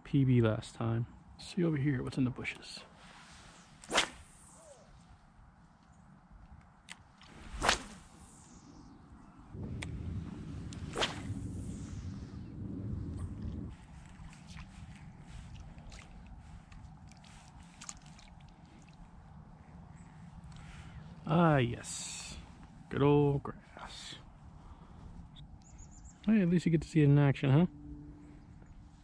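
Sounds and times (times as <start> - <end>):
fishing line and reel rustle: 2.9 - 6.1, 6.8 - 9.9, 10.5 - 22.9
fishing rod whooshing: 3.2 - 5.0, 7.2 - 18.5.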